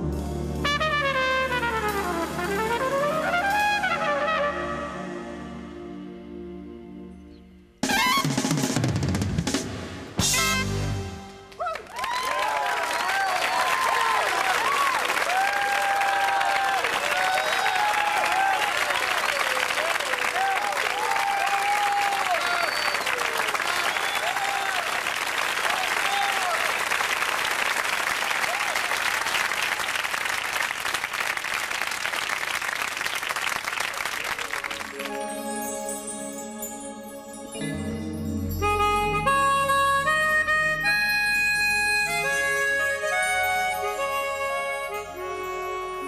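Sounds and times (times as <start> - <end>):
audience clapping: 11.4 - 35.4
whoops and shouts: 11.6 - 19.6, 20.3 - 24.9.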